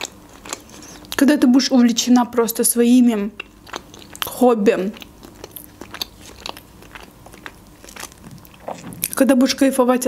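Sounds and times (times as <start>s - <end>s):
person chewing food: 0.0s - 1.2s, 3.3s - 9.2s.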